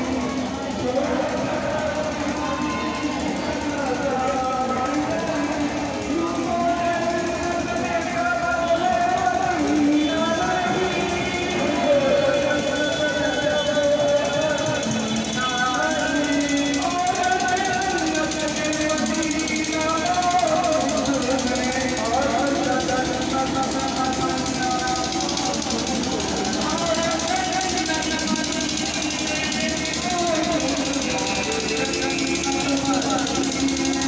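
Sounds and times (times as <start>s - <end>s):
person singing chant over loudspeakers: 0.0s - 34.0s.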